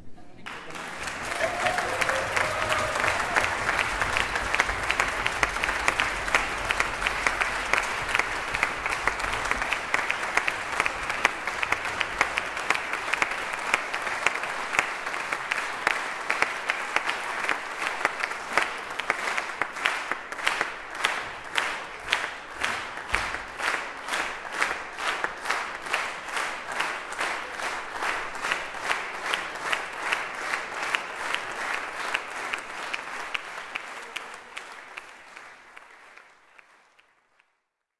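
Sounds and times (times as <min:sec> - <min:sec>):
audience applauding: 0:00.4 - 0:37.6.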